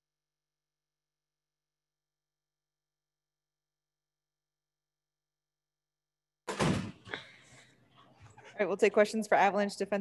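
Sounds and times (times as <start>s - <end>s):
thump: 6.5s - 7.2s.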